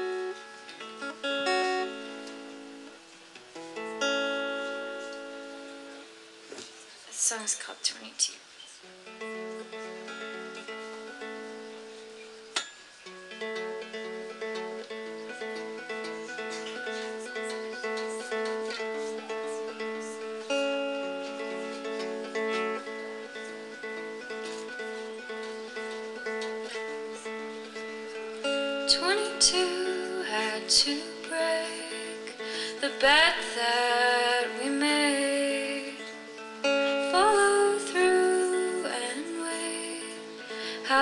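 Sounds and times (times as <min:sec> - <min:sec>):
acoustic guitar plucking: 0:00.0 - 0:41.0.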